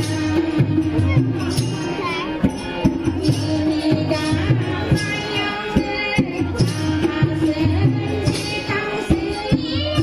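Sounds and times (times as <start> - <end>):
instrumental accompaniment: 0.0 - 10.0
woman singing: 0.0 - 10.0.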